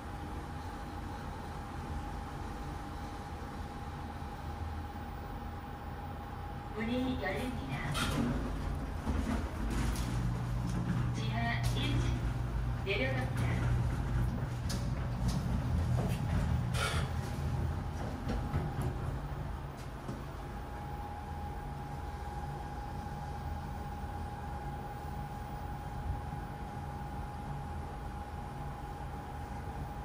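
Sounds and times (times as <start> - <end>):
elevator hum: 0.0 - 30.0
thin steady whine: 0.0 - 30.0.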